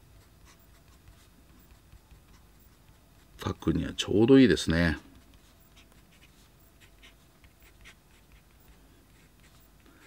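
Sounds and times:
fountain pen scratching on paper: 0:00.2 - 0:03.6, 0:05.2 - 0:10.0.

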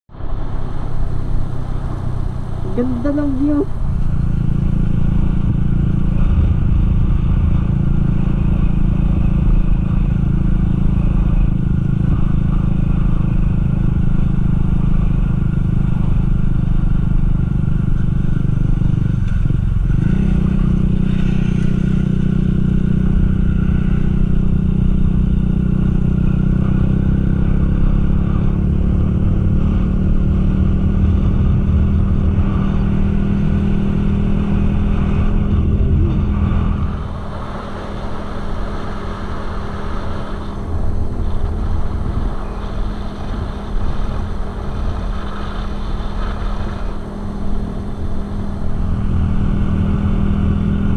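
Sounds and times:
motorcycle engine running: 0:00.1 - 0:50.9
road and wind noise: 0:00.1 - 0:50.9.

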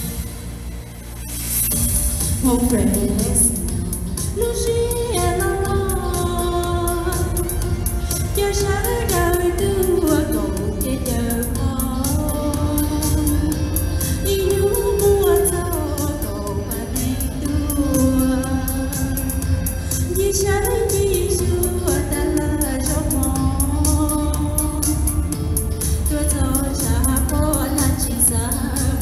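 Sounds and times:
backing music with steady beat: 0:00.0 - 0:29.0
woman singing into microphone: 0:02.3 - 0:29.0.

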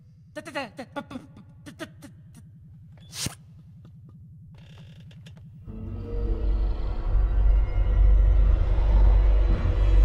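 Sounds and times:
deep steady rumble: 0:01.3 - 0:10.0.

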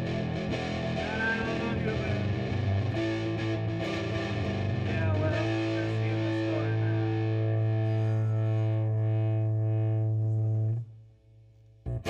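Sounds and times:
live rock band jamming: 0:00.0 - 0:08.8
electric guitar note bending: 0:00.0 - 0:11.0.

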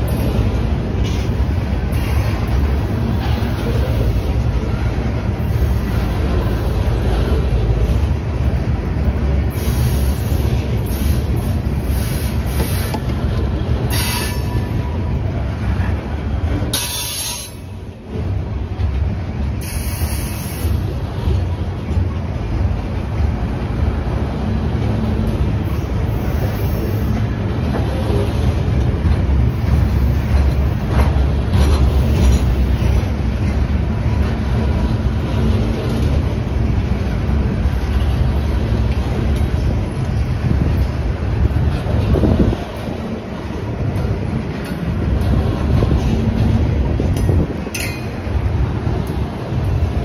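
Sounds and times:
freight train rumbling past: 0:00.0 - 0:50.0
steel wheels clattering on rails: 0:00.0 - 0:50.0.

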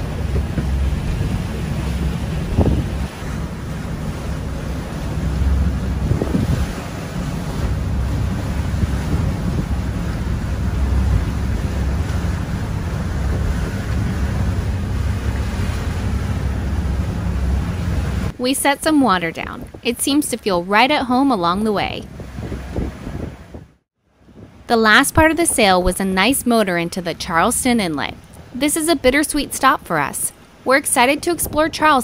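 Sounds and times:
wind noise: 0:00.0 - 0:18.4, 0:19.3 - 0:26.6, 0:31.0 - 0:32.0
steady low engine rumble: 0:00.0 - 0:32.0
waves washing past hull: 0:00.0 - 0:32.0.

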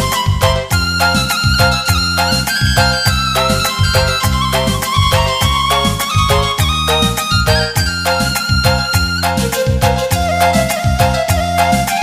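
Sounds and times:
dance music on electronic keyboard: 0:00.0 - 0:12.0.

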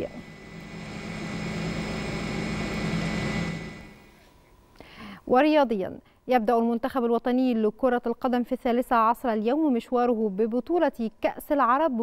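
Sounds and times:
helicopter engine and rotor: 0:00.1 - 0:04.1.

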